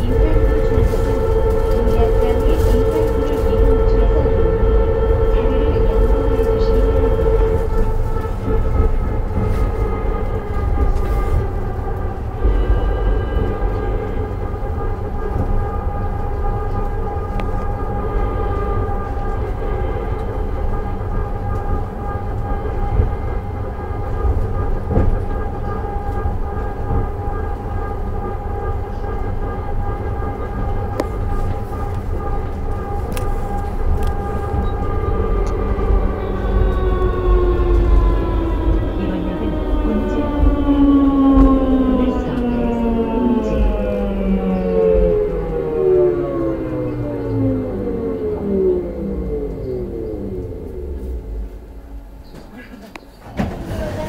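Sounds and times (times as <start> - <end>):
train car low rumble: 0.0 - 54.0.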